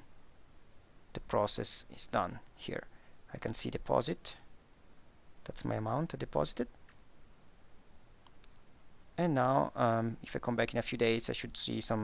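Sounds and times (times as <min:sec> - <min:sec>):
faint sharp click: 0:08.2 - 0:08.7.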